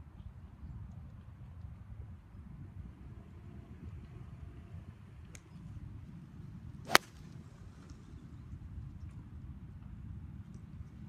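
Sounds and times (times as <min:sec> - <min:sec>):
golf club striking ball: 0:06.9 - 0:07.2.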